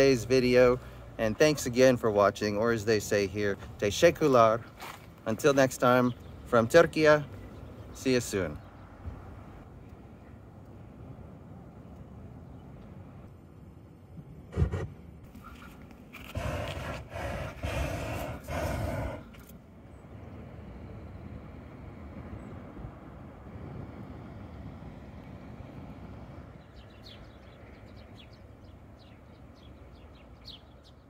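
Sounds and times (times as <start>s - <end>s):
small birds chirping: 5.5s - 10.5s, 26.6s - 31.0s
propane burner blasts: 16.2s - 19.4s.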